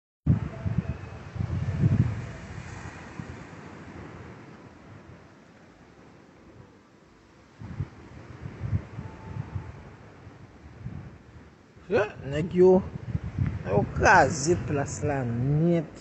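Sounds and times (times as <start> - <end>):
wind buffeting microphone: 0.3 - 6.8, 7.4 - 16.0.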